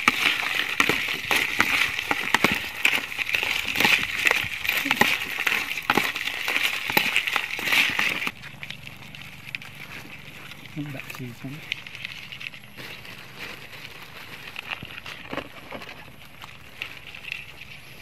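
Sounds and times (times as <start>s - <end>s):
crab shells clicking and rattling: 0.0s - 18.0s.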